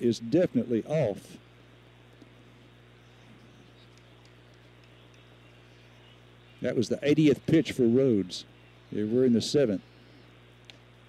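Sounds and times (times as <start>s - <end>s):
low steady hum: 0.0s - 11.0s
faint ticks: 3.8s - 5.3s, 10.6s - 10.9s.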